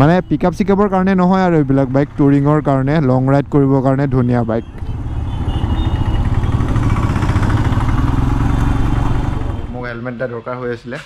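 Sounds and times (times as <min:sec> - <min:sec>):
road and wind noise: 0:00.0 - 0:11.0
motorcycle engine running: 0:04.6 - 0:09.8.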